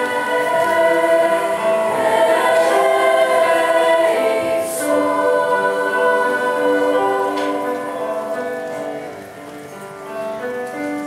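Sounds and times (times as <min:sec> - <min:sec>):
girls' choir singing: 0:00.0 - 0:09.2.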